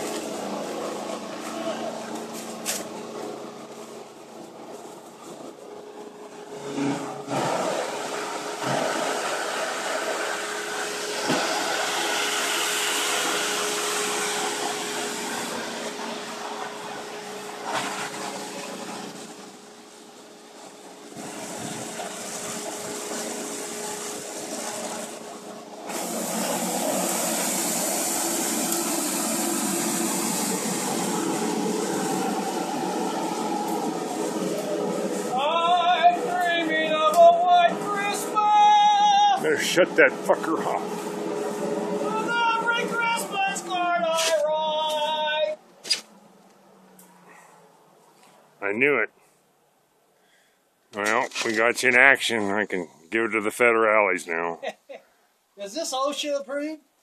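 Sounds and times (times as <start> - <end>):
foam shredder motor running: 6.3 - 43.5.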